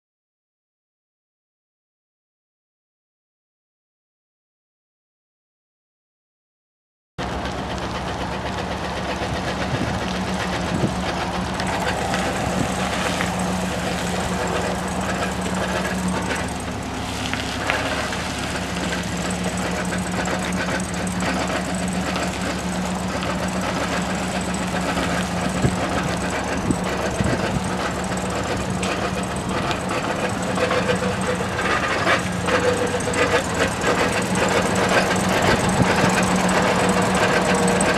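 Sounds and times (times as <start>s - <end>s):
truck engine idling: 7.2s - 37.9s.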